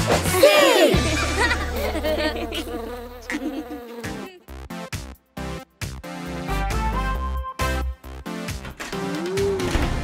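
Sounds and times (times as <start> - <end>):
cartoon bee buzzing: 0.9 - 4.9.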